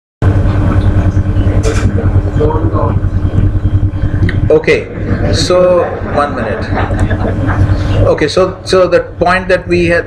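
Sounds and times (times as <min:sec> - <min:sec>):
faint hum: 0:00.2 - 0:10.0
loud low rumble: 0:00.2 - 0:10.0.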